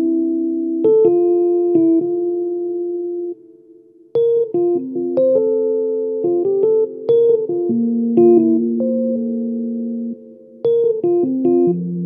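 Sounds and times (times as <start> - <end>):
electric piano chords: 0.0 - 12.0.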